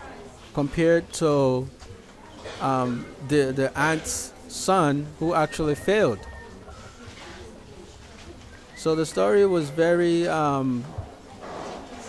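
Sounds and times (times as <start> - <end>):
faint background noise: 0.0 - 12.0
man speaking: 0.6 - 1.7, 2.6 - 6.4, 8.8 - 10.9.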